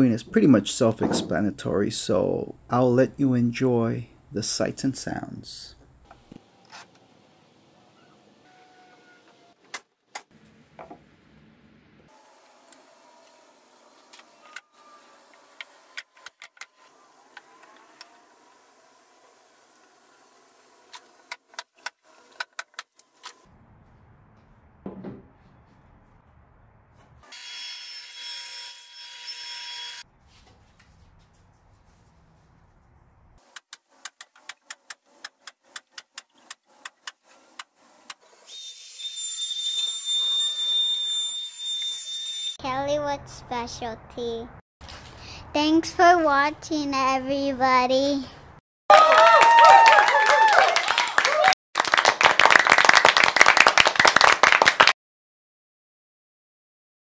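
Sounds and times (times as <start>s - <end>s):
power tool whine: 12.1s - 16.0s.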